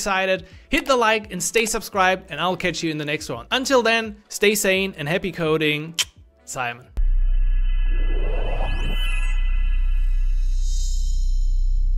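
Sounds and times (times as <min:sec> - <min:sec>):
bright high shimmer: 0:07.0 - 0:11.4
sustained synth chord: 0:07.0 - 0:11.4
deep bass drone: 0:07.0 - 0:11.9.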